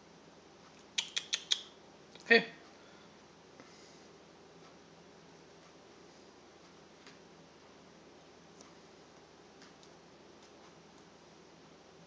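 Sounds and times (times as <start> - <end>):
person speaking with a laugh: 2.2 - 2.6.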